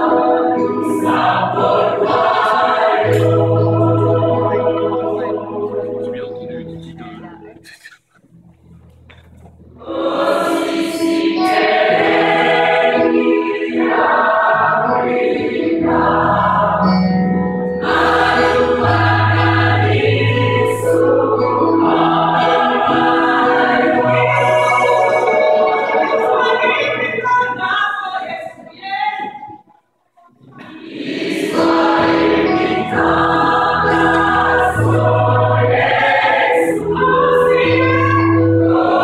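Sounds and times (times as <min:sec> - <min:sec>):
gospel choir singing: 0:00.0 - 0:06.3, 0:09.8 - 0:28.5, 0:30.6 - 0:39.0.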